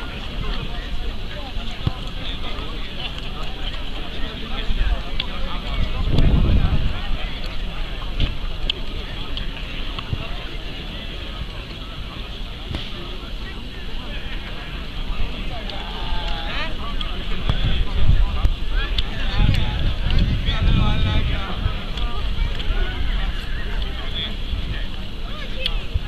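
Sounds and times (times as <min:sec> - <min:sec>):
indistinct chatter of voices: 0:00.0 - 0:26.0
wind rumbling on microphone: 0:00.0 - 0:26.0.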